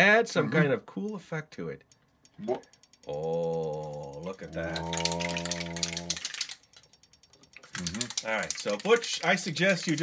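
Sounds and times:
strobe light clicking: 1.8s - 9.6s
person murmuring: 3.2s - 6.2s, 7.8s - 8.2s.

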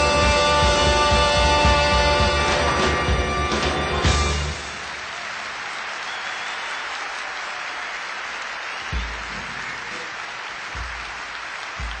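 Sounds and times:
audience applause: 3.5s - 12.0s.

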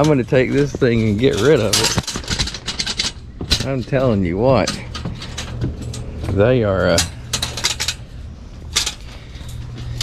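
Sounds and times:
wire cage trap rattling: 0.0s - 6.2s, 6.8s - 10.0s.

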